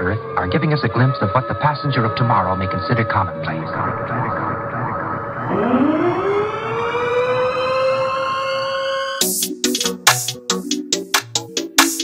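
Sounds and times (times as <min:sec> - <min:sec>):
siren-like tone: 0:00.0 - 0:09.3.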